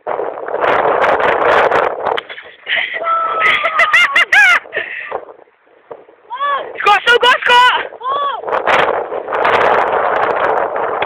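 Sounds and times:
person shouting: 2.8s - 4.2s, 6.3s - 8.5s.

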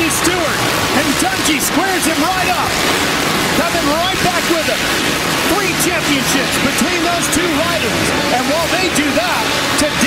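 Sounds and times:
commentator's voice: 0.0s - 10.0s
dirt bike engines revving: 0.0s - 10.0s
stadium crowd noise: 0.0s - 10.0s.

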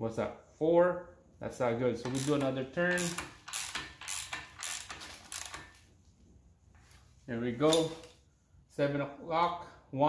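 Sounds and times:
ratchet wrench strokes: 2.0s - 5.8s.

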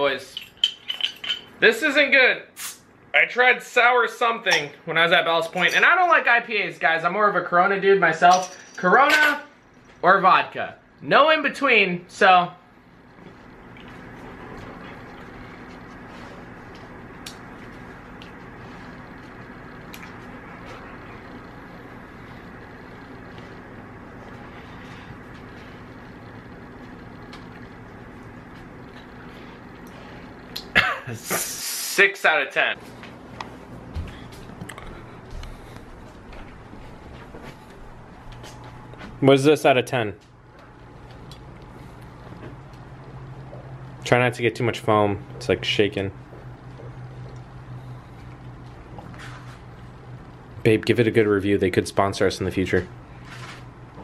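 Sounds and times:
low constant hum: 0.0s - 31.6s, 32.2s - 54.0s.

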